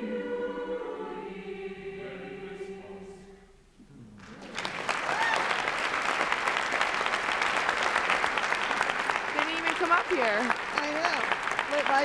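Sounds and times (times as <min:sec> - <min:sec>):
audience applause: 0:04.2 - 0:12.0.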